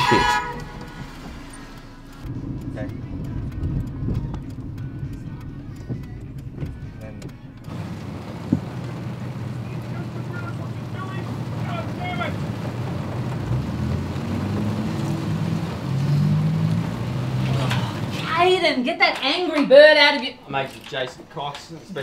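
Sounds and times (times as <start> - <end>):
low background music: 0.0 - 9.5
turn signal ticking: 0.0 - 20.3.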